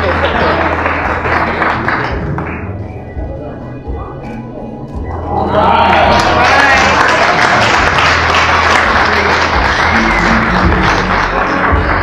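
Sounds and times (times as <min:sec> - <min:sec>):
people applauding: 0:00.0 - 0:02.8, 0:05.6 - 0:12.0.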